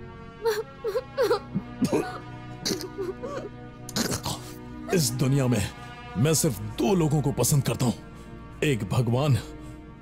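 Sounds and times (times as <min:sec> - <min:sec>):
woman whimpering and moaning: 0:00.4 - 0:04.6.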